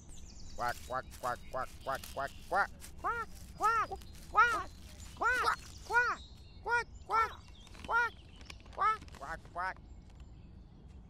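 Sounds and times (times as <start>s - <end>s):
duck quacking: 0.6s - 7.3s, 8.8s - 9.7s.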